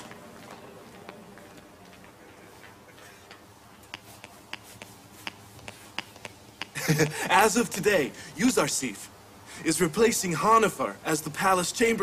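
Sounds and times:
footsteps on stone floor: 0.0s - 6.8s.

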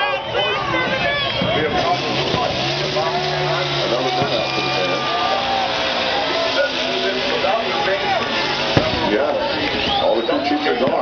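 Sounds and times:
crowd cheering and shouting: 0.0s - 11.0s
race car engine at high revs: 0.2s - 11.0s.

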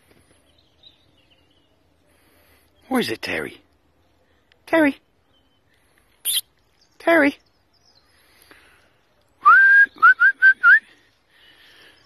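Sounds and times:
person whistling: 9.4s - 10.9s.

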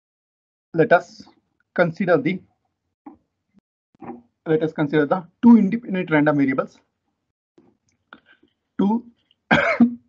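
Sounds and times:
man speaking: 0.8s - 2.4s, 4.5s - 6.8s, 8.8s - 9.1s
man coughing: 9.5s - 10.0s.

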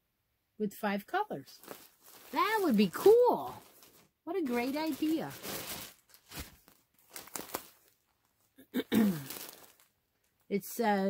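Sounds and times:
packaging crinkling: 1.6s - 8.5s, 9.1s - 10.5s.

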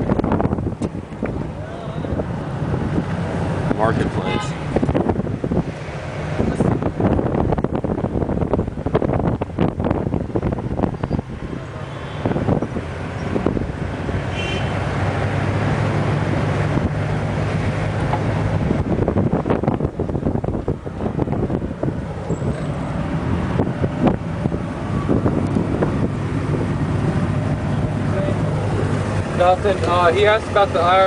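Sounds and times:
wind on microphone: 0.0s - 29.4s
vehicle engine droning: 0.0s - 31.0s.

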